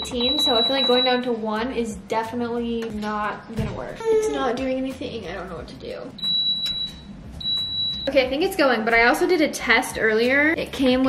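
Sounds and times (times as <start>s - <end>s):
long high electronic beeps: 0.0s - 1.2s, 6.2s - 8.2s.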